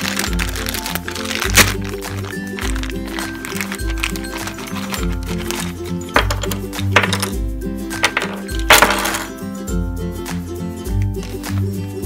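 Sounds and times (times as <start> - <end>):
plastic bag tearing open: 0.0 - 5.8
plastic bag crinkling: 0.0 - 7.4, 8.0 - 9.3
background music with bass line: 0.0 - 12.0.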